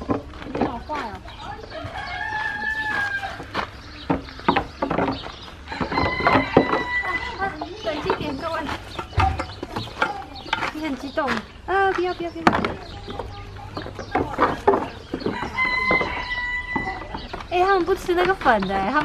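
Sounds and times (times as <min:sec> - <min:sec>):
rooster crowing: 0:01.7 - 0:03.5, 0:05.7 - 0:07.5, 0:15.2 - 0:17.1.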